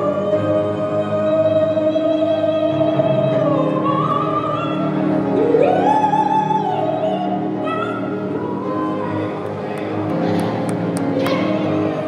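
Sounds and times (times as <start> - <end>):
keyboard accompaniment: 0.0 - 12.0.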